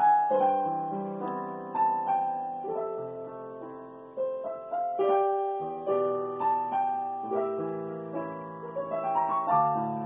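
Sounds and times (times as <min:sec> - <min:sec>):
slow solo piano: 0:00.0 - 0:10.0.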